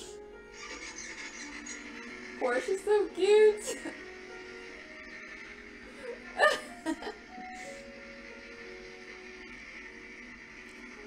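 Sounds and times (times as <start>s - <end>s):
faint background music: 0.0s - 11.0s
person giggling: 6.3s - 7.3s.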